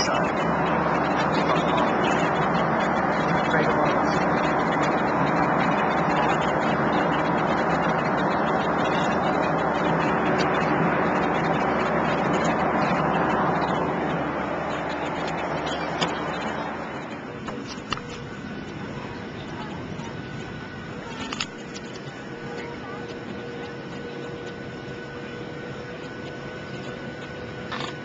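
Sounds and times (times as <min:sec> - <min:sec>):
jet airliner cabin noise: 0:00.0 - 0:28.0.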